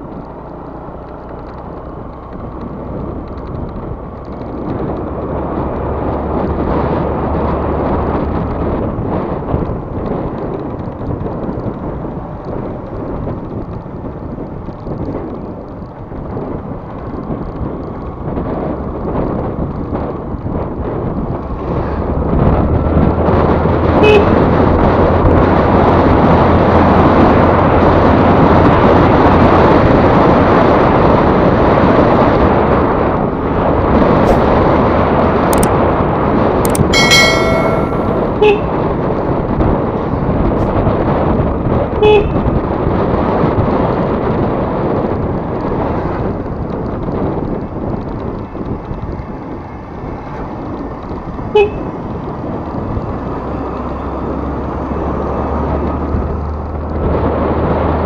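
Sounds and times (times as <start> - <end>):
road noise: 0.0 - 58.0
wind on microphone: 1.3 - 58.0
vehicle horn tooting: 24.0 - 24.4, 37.0 - 38.8, 42.0 - 42.5, 51.5 - 52.0.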